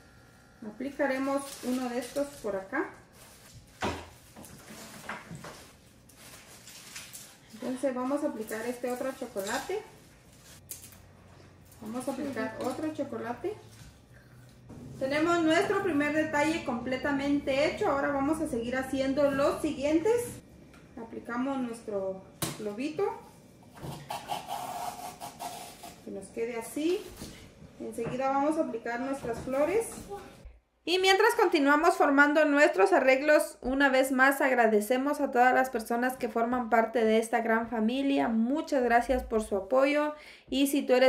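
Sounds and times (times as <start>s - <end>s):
tissue paper rustling: 1.2s - 7.8s.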